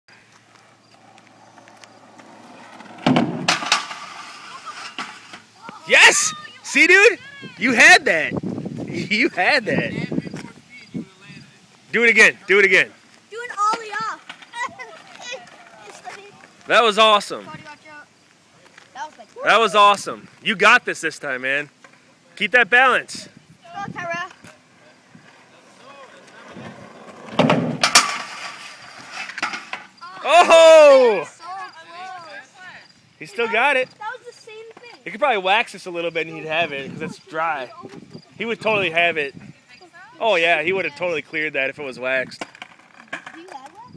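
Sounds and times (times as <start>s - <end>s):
skateboard wheels rolling on concrete: 0.1s - 43.9s
skateboard knocks: 1.0s - 4.1s, 26.6s - 28.4s
skateboard landing clack: 1.2s - 5.8s, 27.1s - 30.0s.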